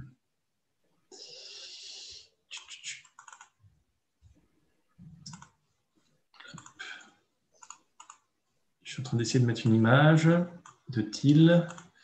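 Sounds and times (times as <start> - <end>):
keyboard and mouse clicking: 2.6 - 3.6, 5.2 - 5.6, 6.4 - 6.8, 7.6 - 8.3, 10.6 - 10.9, 11.7 - 12.0.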